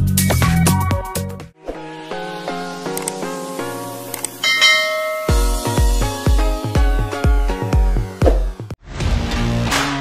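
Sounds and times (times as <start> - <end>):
click sound effects: 2.9 - 3.2
notification ding: 4.4 - 5.8
music with heavy bass beat: 4.5 - 10.0.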